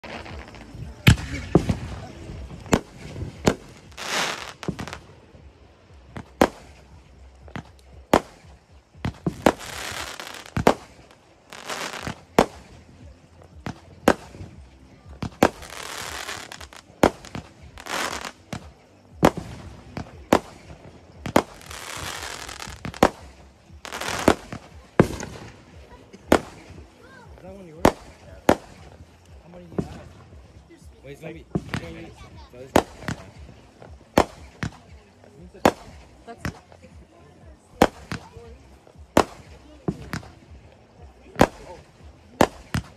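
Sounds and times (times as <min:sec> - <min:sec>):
fireworks bangs: 0:00.0 - 0:26.9, 0:27.8 - 0:30.5, 0:31.5 - 0:35.0, 0:39.2 - 0:40.5, 0:41.3 - 0:42.9.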